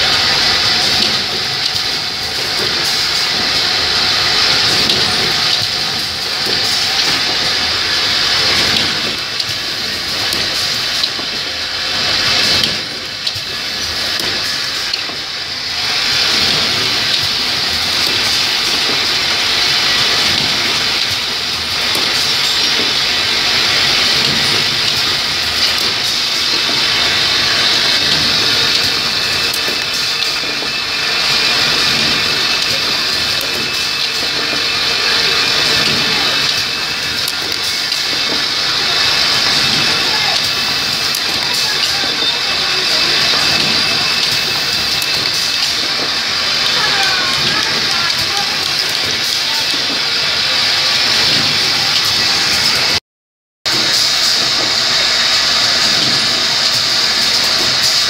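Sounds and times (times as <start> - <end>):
pneumatic clicks and rattles: 0.0 - 15.3, 15.9 - 53.0
machinery hissing: 0.0 - 53.0, 53.7 - 58.0.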